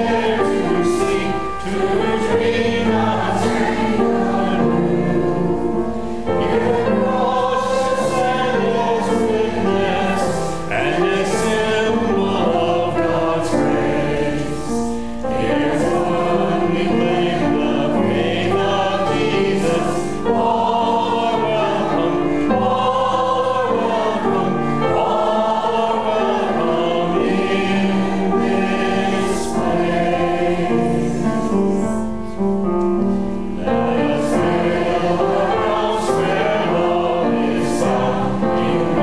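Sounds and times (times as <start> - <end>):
choir singing a hymn: 0.0 - 39.0.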